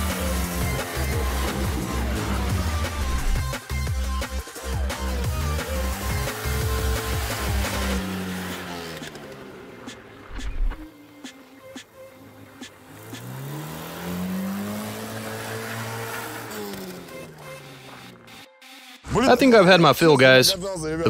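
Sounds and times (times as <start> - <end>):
car engine revving: 0.0 - 19.1.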